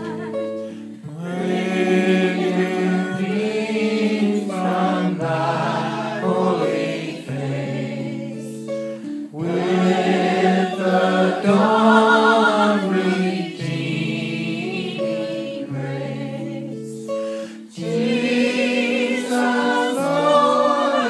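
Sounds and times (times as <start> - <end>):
acoustic guitar strumming: 0.0 - 21.0
man singing with vibrato: 1.0 - 21.0.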